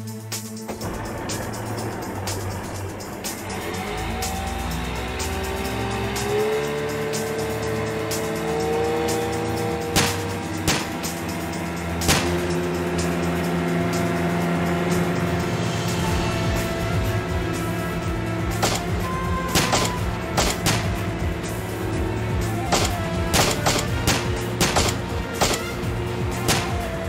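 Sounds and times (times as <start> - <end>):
dramatic soundtrack music: 0.0 - 27.0
jet ski engines accelerating: 0.0 - 27.0
sharp hits: 0.6 - 21.9, 22.6 - 27.0.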